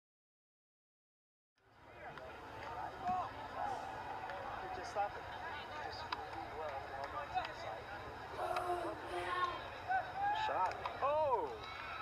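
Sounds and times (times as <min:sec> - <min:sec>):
people calling out: 0:08.3 - 0:10.3.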